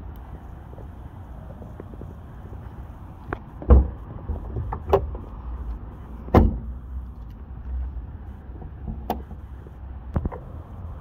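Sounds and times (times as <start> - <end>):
sharp thump: 6.3 - 6.7.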